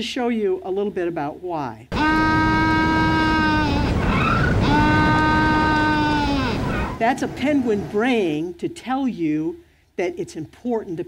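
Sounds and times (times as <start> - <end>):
background hiss: 0.0 - 11.0
penguin braying call: 1.9 - 7.0.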